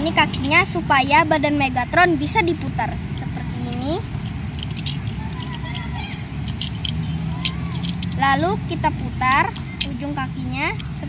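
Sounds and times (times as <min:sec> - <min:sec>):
plastic toy joints clicking: 0:00.0 - 0:00.8, 0:03.2 - 0:11.0
steady background noise: 0:00.0 - 0:11.0.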